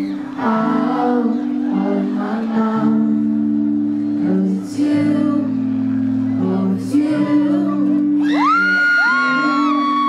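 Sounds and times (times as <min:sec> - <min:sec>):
acoustic guitar: 0:00.0 - 0:10.0
pop ballad singing: 0:00.0 - 0:10.0.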